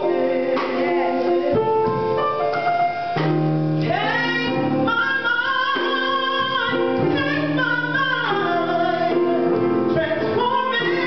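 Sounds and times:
woman singing gospel song: 0:00.0 - 0:01.8, 0:03.8 - 0:11.0
instrumental accompaniment: 0:00.0 - 0:11.0.

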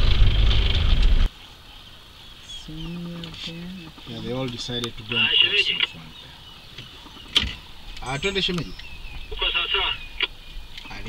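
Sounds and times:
vehicle engine running: 0:00.0 - 0:01.3
passengers talking: 0:02.5 - 0:11.0.

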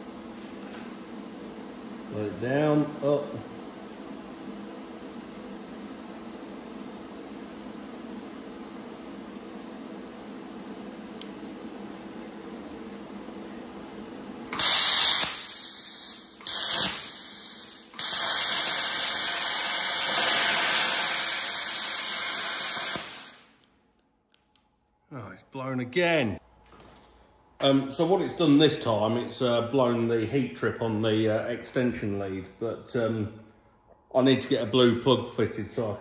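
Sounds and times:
steady low hum: 0:00.0 - 0:36.0
plasma cutter arc hissing: 0:14.5 - 0:23.6.

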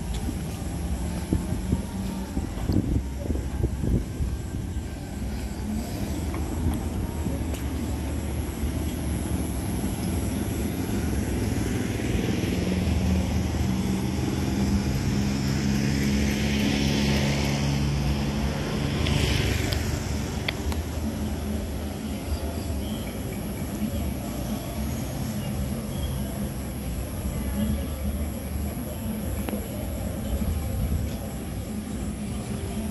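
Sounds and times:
low engine drone: 0:00.0 - 0:32.9.

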